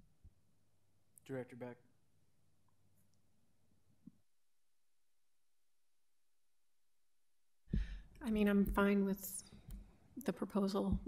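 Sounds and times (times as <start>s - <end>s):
breath into microphone: 7.7s - 8.1s.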